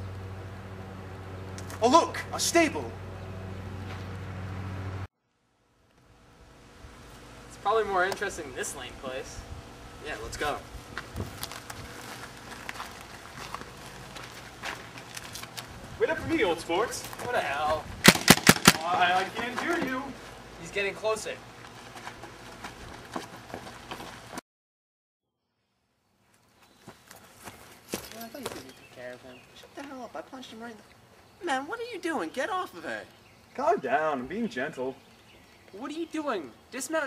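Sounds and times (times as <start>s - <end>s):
man talking: 1.8s - 3.0s, 16.0s - 17.9s, 18.7s - 21.4s
footsteps on dirt and gravel: 10.8s - 16.3s, 17.0s - 20.5s, 21.4s - 24.4s, 26.4s - 30.0s.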